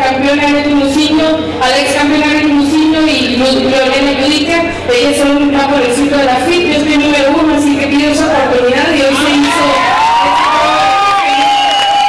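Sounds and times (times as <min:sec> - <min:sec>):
crowd cheering and shouting: 0:09.1 - 0:12.0.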